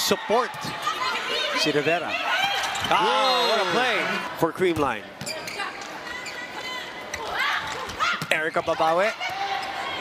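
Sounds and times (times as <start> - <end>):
crowd noise and voices: 0.0 - 10.0.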